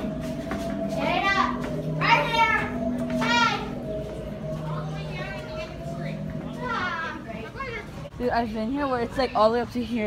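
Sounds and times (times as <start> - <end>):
steady low hum: 0.0 - 10.0
children's high-pitched calls: 0.9 - 8.1.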